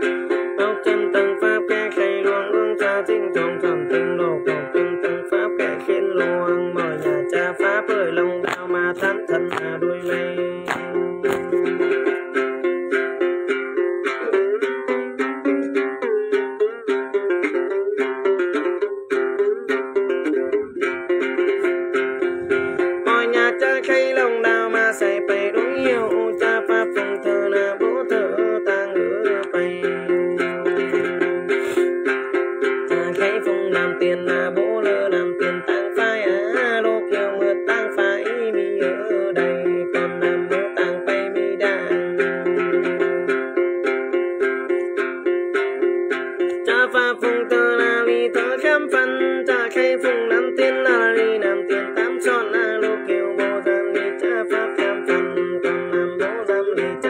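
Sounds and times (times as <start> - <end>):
plucked lute notes: 0.0 - 57.0.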